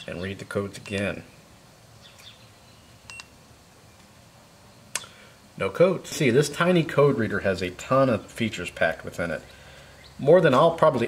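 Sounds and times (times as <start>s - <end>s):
sharp click: 4.9s - 5.2s.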